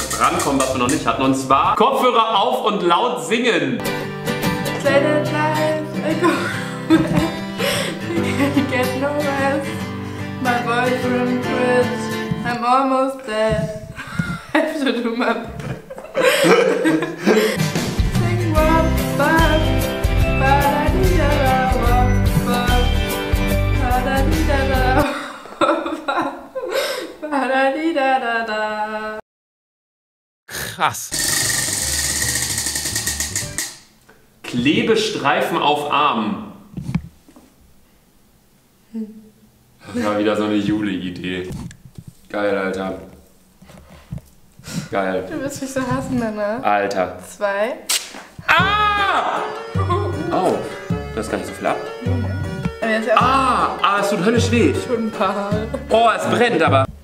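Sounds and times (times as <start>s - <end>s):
acoustic guitar music: 0.0s - 1.8s, 3.8s - 13.9s, 17.2s - 25.0s, 31.2s - 33.9s, 48.4s - 57.0s
prize wheel pointer clicking: 31.2s - 33.8s.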